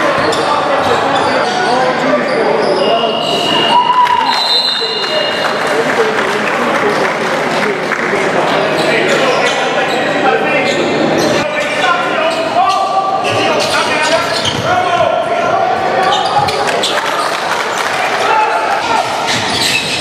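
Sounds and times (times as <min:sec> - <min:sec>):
voices of players and onlookers: 0:00.0 - 0:20.0.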